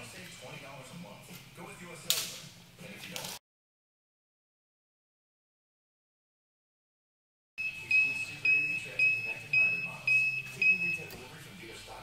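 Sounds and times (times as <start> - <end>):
electronic beeper high beeps: 7.6 - 11.1.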